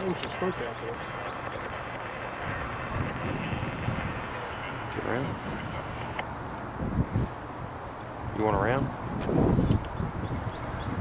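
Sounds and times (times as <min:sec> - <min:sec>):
diesel locomotive droning: 0:00.0 - 0:06.3
faint voices: 0:00.0 - 0:06.3
wind noise on microphone: 0:00.0 - 0:11.0.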